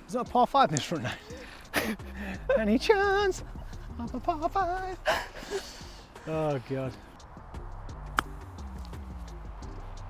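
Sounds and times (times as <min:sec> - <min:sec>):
quiet background music: 0:00.0 - 0:10.0
golf club striking ball: 0:08.1 - 0:08.9.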